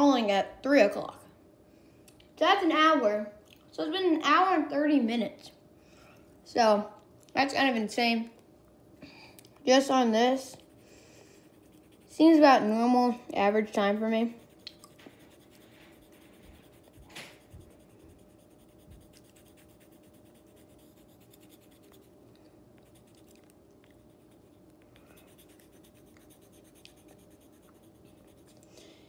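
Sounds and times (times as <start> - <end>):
pencil scratching on paper: 11.5 - 12.6, 13.8 - 22.2, 22.8 - 23.3, 24.0 - 28.6.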